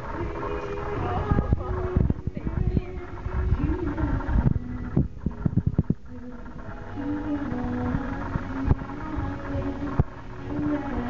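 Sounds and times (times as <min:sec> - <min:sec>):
person singing: 0:00.0 - 0:11.0.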